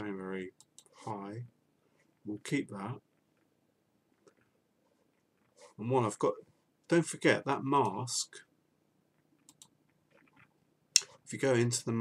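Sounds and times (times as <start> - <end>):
computer mouse clicking: 0.6 - 1.0, 9.4 - 11.1.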